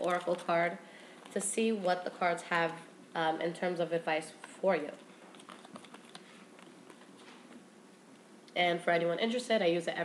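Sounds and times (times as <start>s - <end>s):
cards being shuffled: 4.4s - 7.6s.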